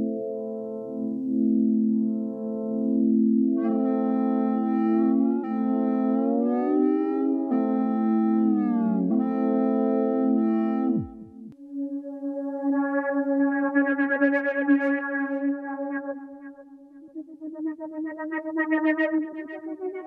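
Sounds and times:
synthesizer sliding lead tone: 0:10.4 - 0:16.6.

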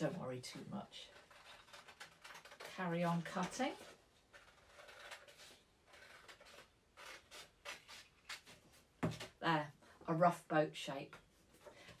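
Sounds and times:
paper rustling: 0:01.1 - 0:09.3
scissors snipping paper: 0:01.2 - 0:08.5.

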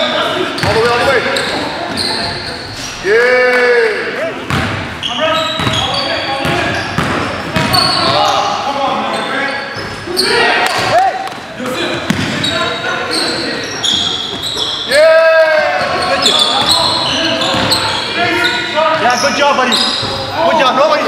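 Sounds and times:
sneaker squeaks: 0:00.0 - 0:03.1, 0:04.5 - 0:11.1, 0:11.9 - 0:20.7
players calling out: 0:00.0 - 0:21.0
basketball bouncing: 0:04.5 - 0:04.9, 0:05.6 - 0:05.8, 0:06.4 - 0:08.1, 0:10.7 - 0:12.4, 0:17.5 - 0:17.8.

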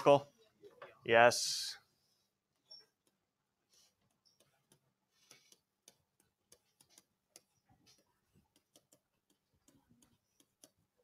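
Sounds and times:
stylus tapping on writing surface: 0:04.1 - 0:11.0.

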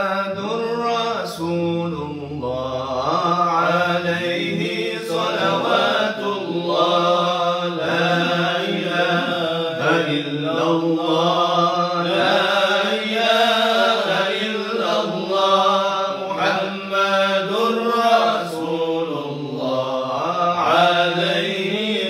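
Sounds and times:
men chanting in unison: 0:00.0 - 0:22.0.

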